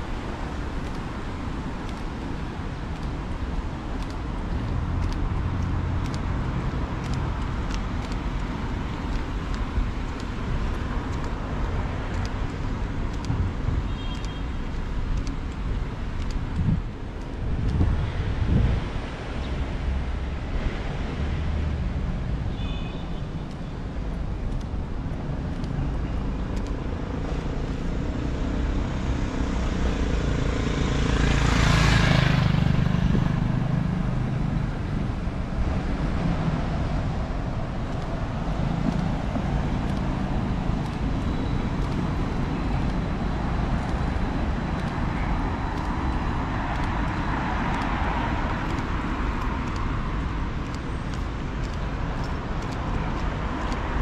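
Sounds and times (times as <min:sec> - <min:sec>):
cars passing on wet street: 0:00.0 - 0:54.0.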